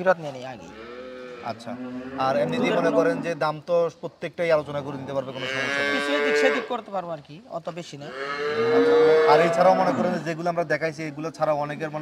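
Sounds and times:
cow mooing: 0:00.7 - 0:03.4, 0:05.3 - 0:06.8, 0:08.1 - 0:10.2.

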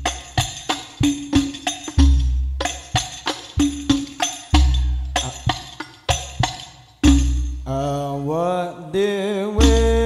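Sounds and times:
man singing melismatic notes: 0:04.9 - 0:05.5, 0:07.6 - 0:10.0.

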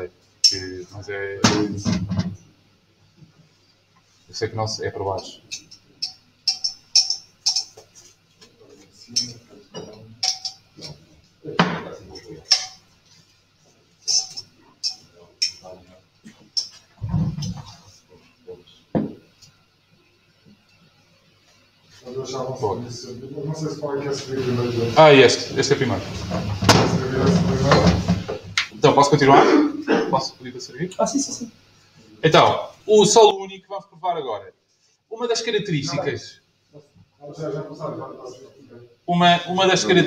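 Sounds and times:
low background hum: 0:00.0 - 0:40.0
wine glasses clinking: 0:05.5 - 0:07.8, 0:09.2 - 0:10.7, 0:14.1 - 0:15.6
knock on hard surface: 0:18.9 - 0:19.2.

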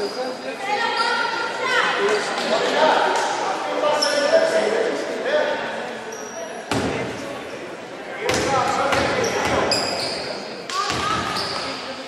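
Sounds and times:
voices echoing in gym: 0:00.0 - 0:12.0.

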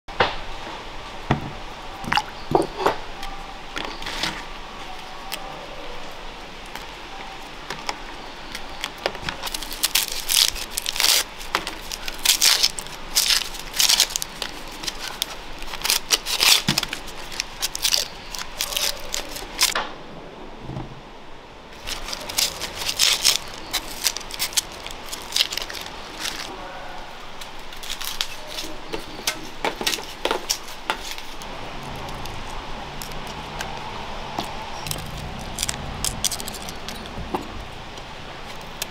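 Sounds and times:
tomatoes splashing into water: 0:02.0 - 0:02.7
onion skins crackling and tearing: 0:03.2 - 0:19.8, 0:21.8 - 0:26.5, 0:27.3 - 0:38.9.

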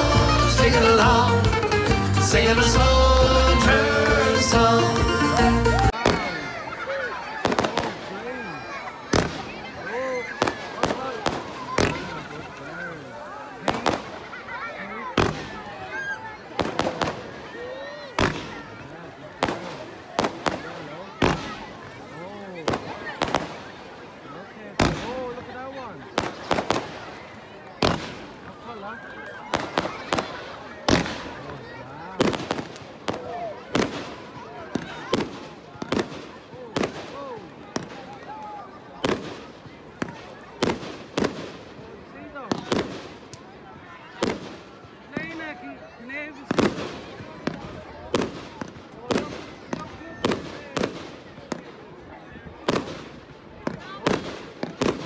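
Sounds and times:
people chattering: 0:00.0 - 0:55.0
fireworks bangs and crackles: 0:02.5 - 0:55.0.

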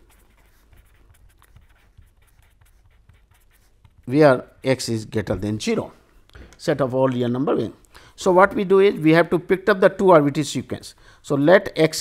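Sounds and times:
pen scratching on paper: 0:00.0 - 0:04.8.

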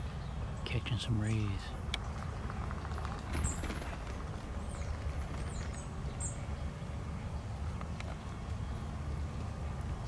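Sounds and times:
small birds chirping: 0:00.0 - 0:10.0
steady low rumble: 0:00.0 - 0:10.0.

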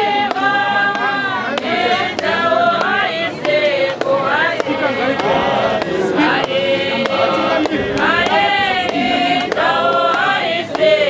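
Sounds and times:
congregation singing: 0:00.0 - 0:11.0.

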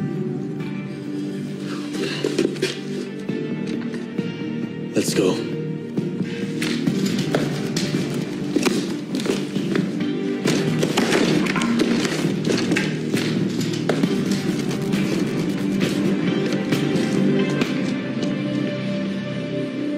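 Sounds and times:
dramatic film score: 0:00.0 - 0:19.9.

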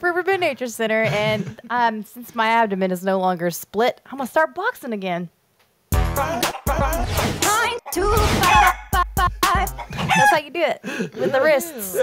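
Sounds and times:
people laughing: 0:08.7 - 0:12.0.

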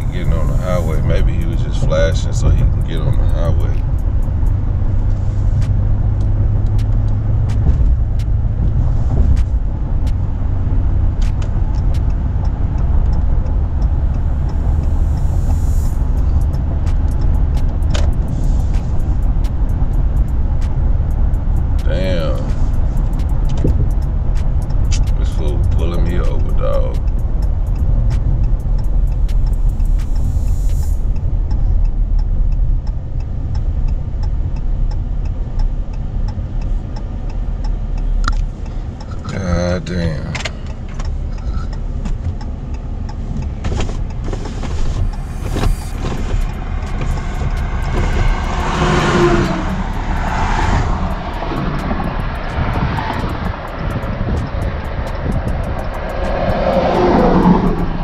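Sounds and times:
truck road and engine rumble: 0:00.0 - 0:58.0.

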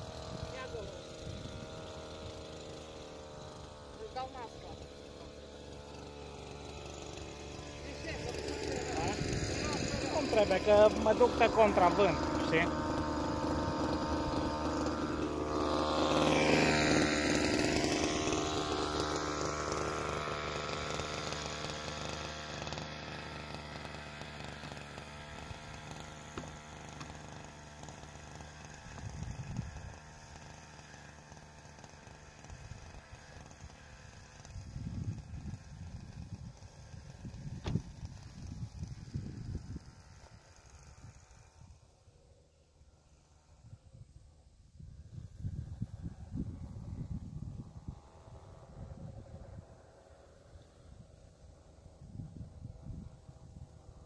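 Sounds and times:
two-stroke sprayer engine running: 0:00.0 - 0:54.0.

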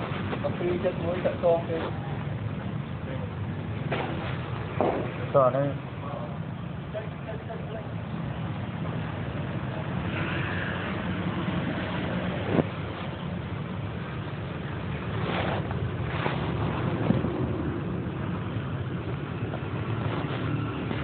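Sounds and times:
low background rumble: 0:00.0 - 0:21.0.

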